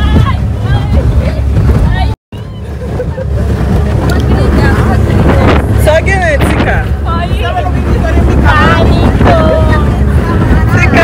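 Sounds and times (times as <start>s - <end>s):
motorboat running at speed: 0.0s - 11.0s
wind buffeting microphone: 0.0s - 11.0s.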